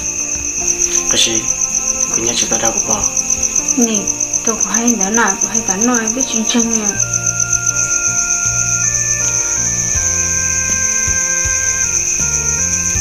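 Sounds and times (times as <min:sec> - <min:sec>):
crickets chirping: 0:00.0 - 0:13.0
slow background music: 0:00.0 - 0:13.0.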